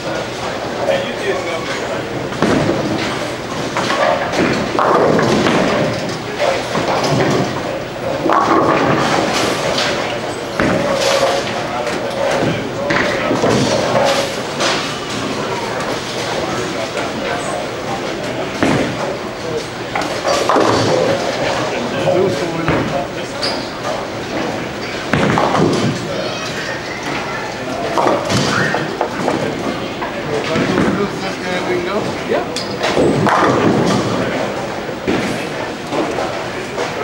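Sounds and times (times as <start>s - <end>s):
bowling balls and pins clattering: 0.0s - 37.0s
murmur of many voices: 0.0s - 37.0s.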